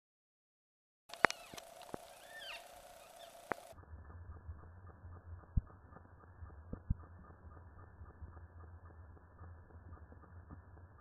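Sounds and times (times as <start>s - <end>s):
sharp clicks: 1.1s - 2.1s, 3.0s - 3.8s
bird whistled calls: 1.1s - 3.7s
dull low rumble: 1.1s - 11.0s
faint steady hum: 1.1s - 11.0s.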